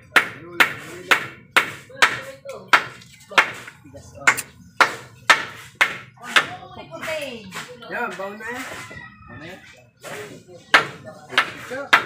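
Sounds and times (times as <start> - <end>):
hammer striking wood: 0.0 - 3.7, 4.3 - 6.6, 10.0 - 12.0.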